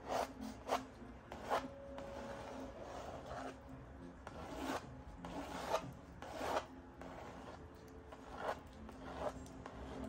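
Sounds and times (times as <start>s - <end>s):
pencil scratching on paper: 0.0s - 3.6s, 4.2s - 10.0s.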